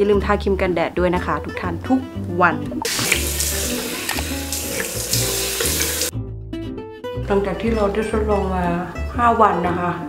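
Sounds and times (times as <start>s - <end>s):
tap water running into sink: 2.8s - 6.1s
water splashing on face: 2.8s - 6.1s.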